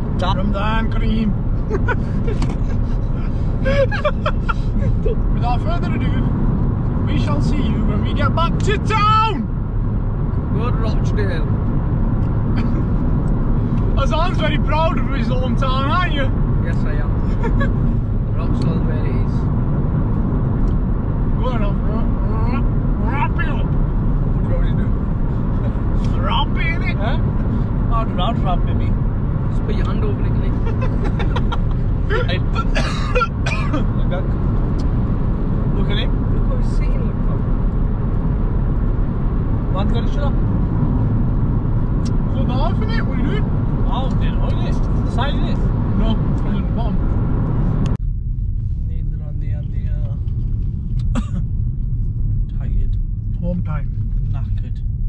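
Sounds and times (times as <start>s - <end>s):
car road and engine rumble: 0.0s - 55.0s
people talking: 0.2s - 2.7s, 3.6s - 6.3s, 7.1s - 9.5s, 10.5s - 11.5s, 14.0s - 17.7s, 18.4s - 19.3s, 21.4s - 23.7s, 24.4s - 24.9s, 26.0s - 27.3s, 27.9s - 28.9s, 29.6s - 34.3s, 35.8s - 37.4s, 39.7s - 40.4s, 42.3s - 47.0s, 48.9s - 50.2s, 52.5s - 54.8s.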